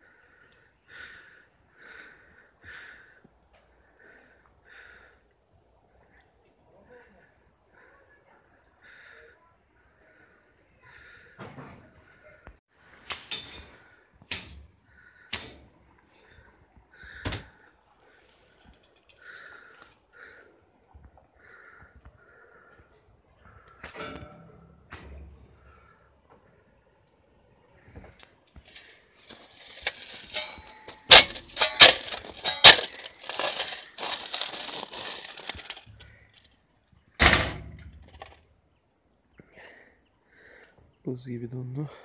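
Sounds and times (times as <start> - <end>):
icy snow crunching and cracking: 28.6 - 36.5.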